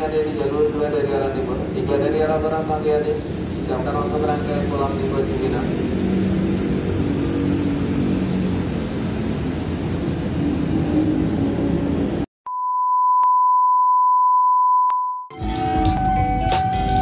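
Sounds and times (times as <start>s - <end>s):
railway station background rumble: 0.0s - 12.3s, 15.4s - 17.0s
steady test-tone beep: 12.5s - 17.0s.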